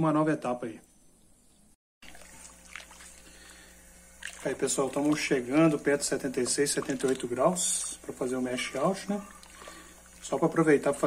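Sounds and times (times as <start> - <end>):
steady low hum: 0.0 - 11.0
paddle stirring sloshing mash: 2.0 - 10.6.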